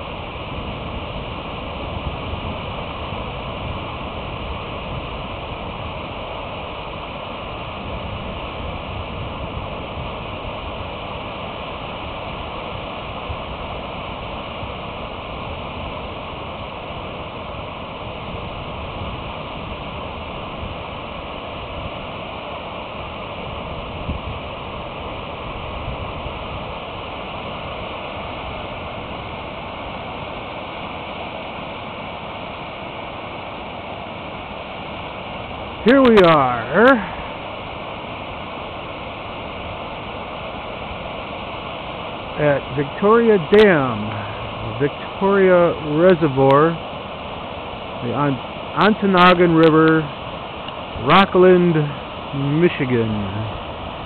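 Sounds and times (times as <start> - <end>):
water cascading down rock: 0.0 - 54.0.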